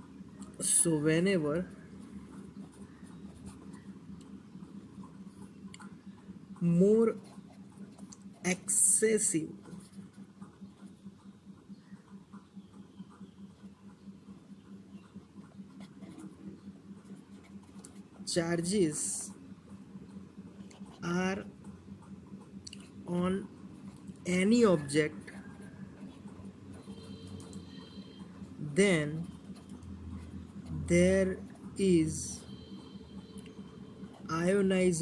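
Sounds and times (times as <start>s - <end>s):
steady low hum: 0.0s - 35.0s
pen scratching on paper: 1.7s - 11.3s, 15.0s - 18.2s.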